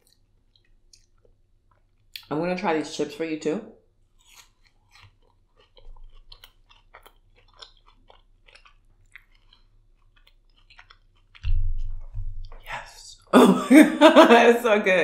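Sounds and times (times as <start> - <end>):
chip crunching and chewing: 0.0 - 2.3, 4.1 - 12.6
low thump: 11.4 - 12.6.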